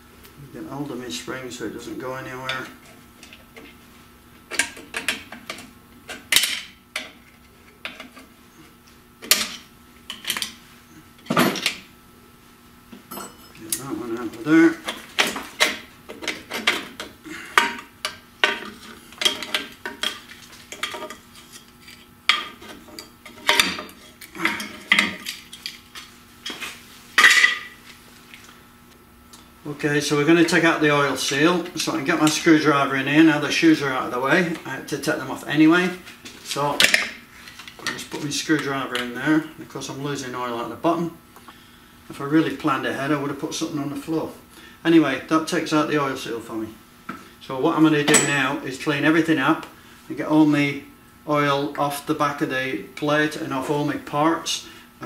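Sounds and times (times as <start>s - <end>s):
metal clinks and clanks: 13.1s - 13.6s.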